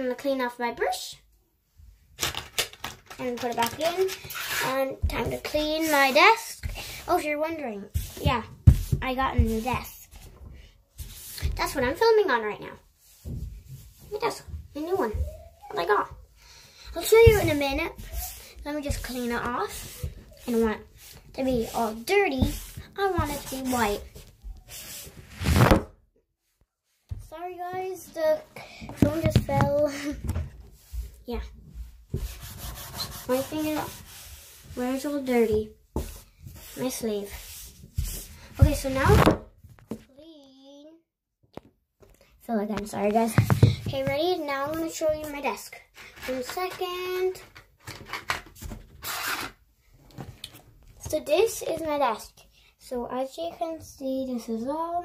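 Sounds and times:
makeup brush scratching rustle: 3.5 - 10.3, 17.0 - 25.6, 32.1 - 38.9.

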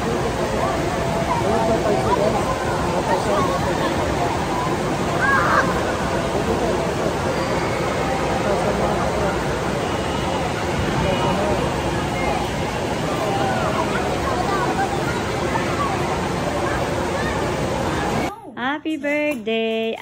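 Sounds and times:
babble of voices: 0.0 - 18.3
rushing pool water: 0.0 - 18.3.

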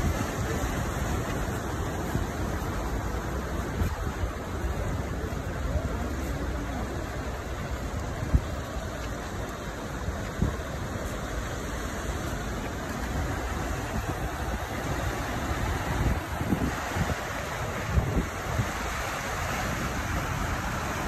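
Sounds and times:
floodwater rushing: 0.0 - 21.0
traffic on flooded street: 0.0 - 21.0
wind buffeting microphone: 0.0 - 21.0.

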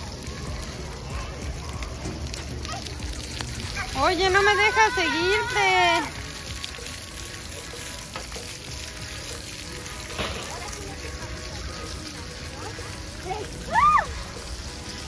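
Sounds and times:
water jets spraying on wet ground: 0.0 - 15.0.

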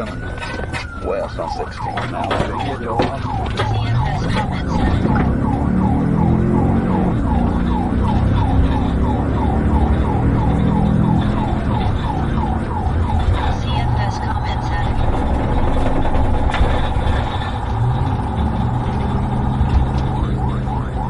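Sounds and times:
car engine and road noise: 0.0 - 21.0
police siren yelping and warbling: 0.0 - 21.0.

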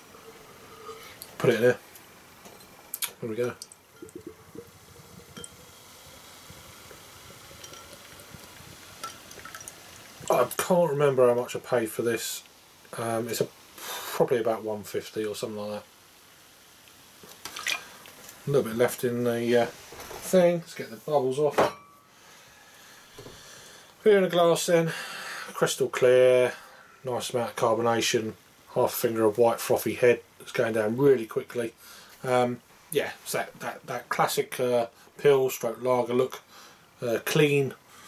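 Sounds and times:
low steady hiss: 0.0 - 38.0
beer pouring into a glass: 2.5 - 10.6.

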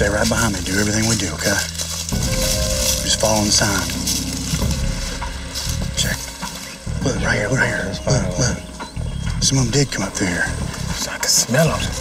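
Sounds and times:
footsteps through dry leaves: 0.0 - 7.8
low steady rumble: 0.0 - 12.0.

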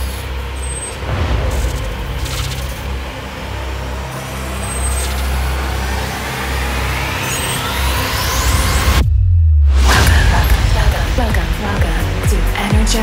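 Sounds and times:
deep bass rumble: 0.0 - 13.0
rising pitch sweep: 0.9 - 9.9
dense whooshing noise: 1.0 - 4.7.

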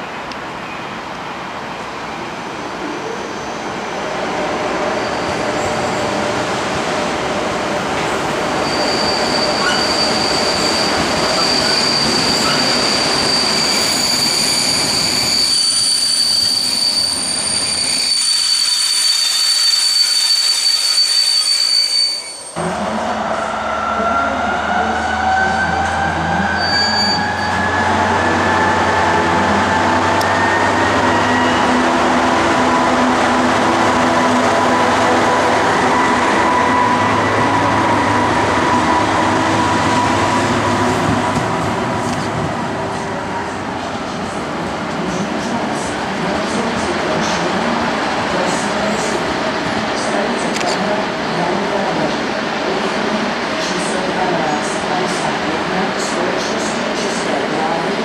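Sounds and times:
high-pitched wheel squeal: 8.6 - 22.6, 23.8 - 29.3.

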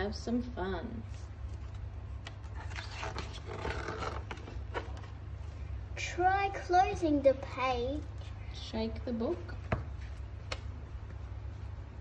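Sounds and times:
steady low hum: 0.0 - 12.0
paper page rustling: 1.1 - 5.2.

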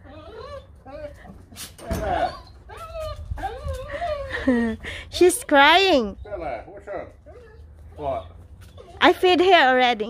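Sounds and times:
dog whining: 0.0 - 4.8, 5.5 - 9.5.

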